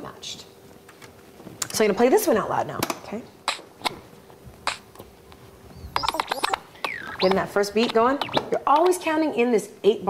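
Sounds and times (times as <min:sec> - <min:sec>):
faint steady hum: 0:00.0 - 0:10.0
record scratching back and forth: 0:03.9 - 0:09.1
turntable clicks: 0:04.7 - 0:04.9, 0:05.9 - 0:09.1.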